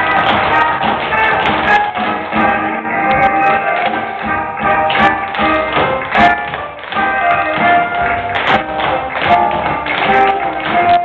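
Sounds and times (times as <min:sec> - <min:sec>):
instrumental music: 0:00.0 - 0:11.0
tap shoes striking stage floor: 0:00.0 - 0:11.0.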